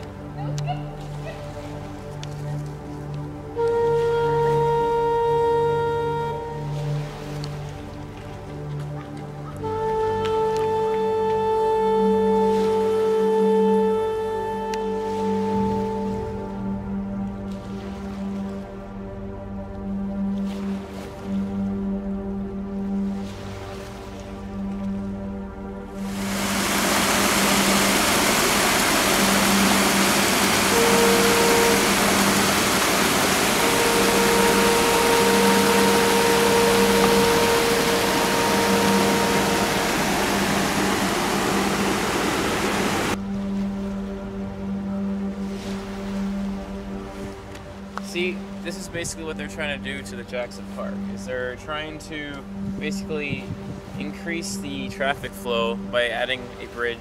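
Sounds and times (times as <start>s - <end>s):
slow ambient music: 0.0s - 57.0s
rushing water of rapids: 26.0s - 43.6s.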